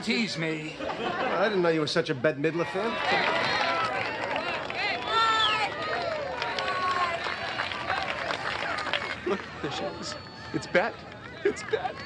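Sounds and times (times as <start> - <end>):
people calling out and talking: 0.0 - 12.0.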